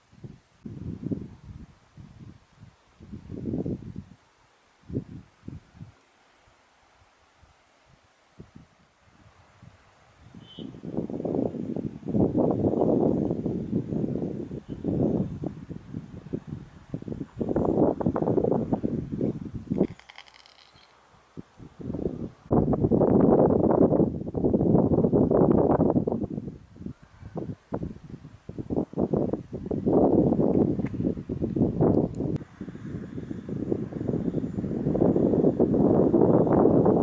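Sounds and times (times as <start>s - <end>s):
wind buffeting microphone: 0.1s - 4.2s, 4.8s - 6.0s, 7.9s - 37.0s.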